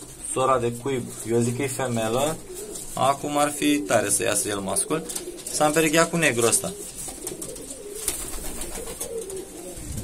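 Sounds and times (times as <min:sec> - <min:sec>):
pigeons cooing: 0:01.0 - 0:10.0.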